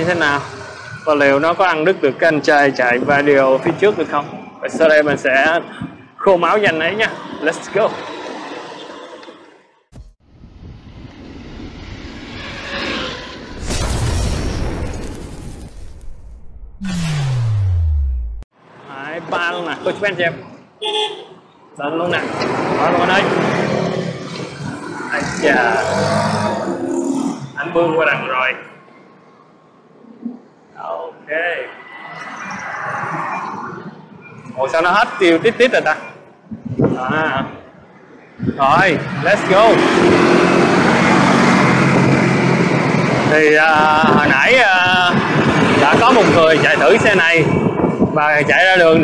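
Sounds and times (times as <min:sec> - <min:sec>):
whoosh: 0:10.0 - 0:18.5
car tyre and road noise passing: 0:10.3 - 0:16.2, 0:31.0 - 0:36.0, 0:38.1 - 0:43.8
deep boom with low rumble: 0:13.6 - 0:18.5
steady noise: 0:15.7 - 0:18.5.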